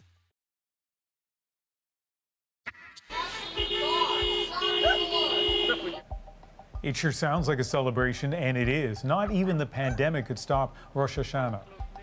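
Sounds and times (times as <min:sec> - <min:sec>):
people calling out: 0:03.1 - 0:06.0
two-note car horn blasts: 0:03.3 - 0:06.1.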